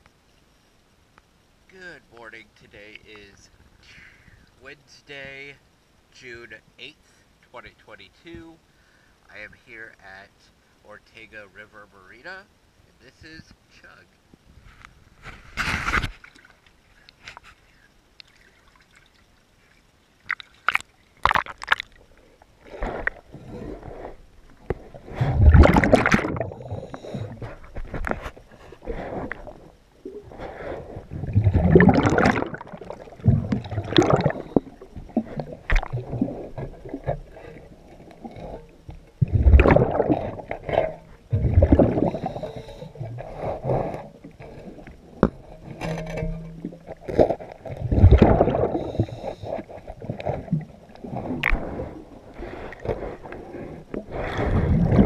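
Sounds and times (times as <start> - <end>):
water splashing: 18.2 - 28.2, 29.0 - 53.0, 54.0 - 55.0
underwater bubbles gurgling: 20.2 - 27.8, 28.8 - 55.0.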